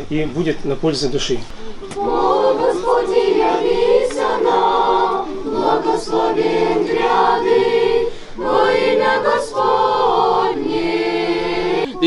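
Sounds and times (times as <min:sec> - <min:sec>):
choir singing a cappella: 0:01.8 - 0:12.0.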